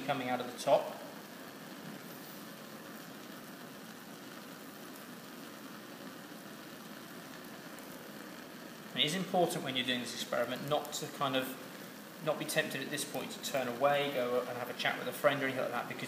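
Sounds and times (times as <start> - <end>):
bunsen burner rushing: 0.0 - 16.0.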